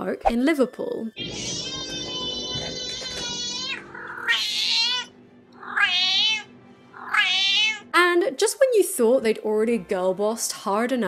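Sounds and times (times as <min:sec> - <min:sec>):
cat meowing: 0:01.2 - 0:07.9.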